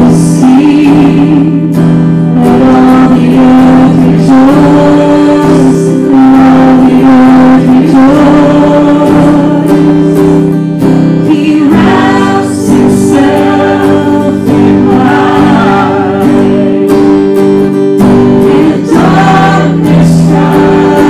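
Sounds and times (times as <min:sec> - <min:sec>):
man and woman singing together: 0:00.0 - 0:01.8, 0:02.4 - 0:10.5, 0:11.1 - 0:21.0
guitar playing sustained chords: 0:00.0 - 0:21.0.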